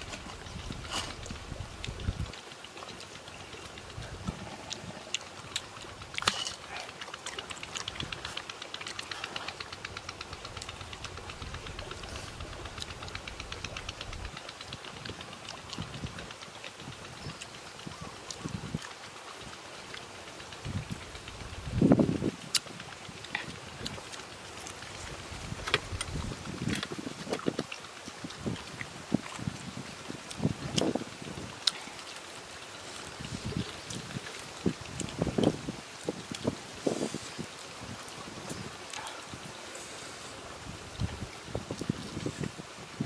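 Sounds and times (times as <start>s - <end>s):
crunchy chewing of salad: 0.0s - 1.9s, 31.6s - 32.0s
wind buffeting microphone: 0.0s - 2.4s, 3.4s - 6.8s, 9.2s - 18.8s, 20.5s - 43.0s.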